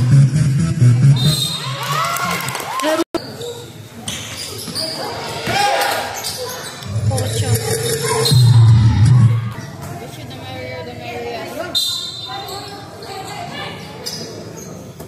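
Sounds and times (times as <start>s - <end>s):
voices and shouts: 5.1s - 9.8s.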